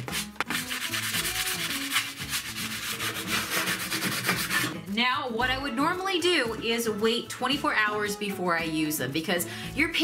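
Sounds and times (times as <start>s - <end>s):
sanding pad rubbing on metal: 0.0s - 4.7s.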